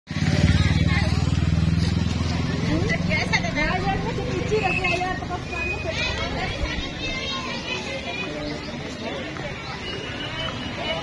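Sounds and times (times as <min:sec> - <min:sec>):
motorcycle engine running: 0:00.1 - 0:06.2
voices calling: 0:00.2 - 0:11.0.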